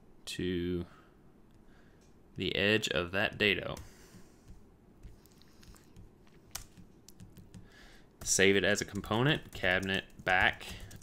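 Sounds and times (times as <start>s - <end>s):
computer keyboard and mouse clicks: 3.8s - 11.0s.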